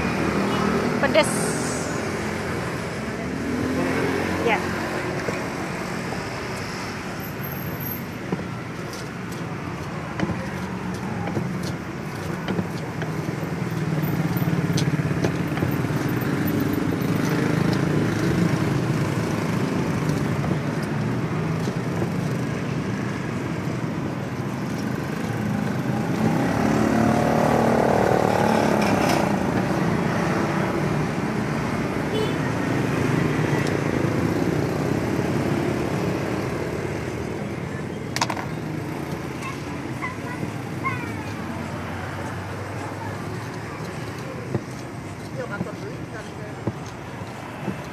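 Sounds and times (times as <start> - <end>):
road traffic passing: 0.0 - 47.9
pestle grinding in mortar: 43.2 - 47.9.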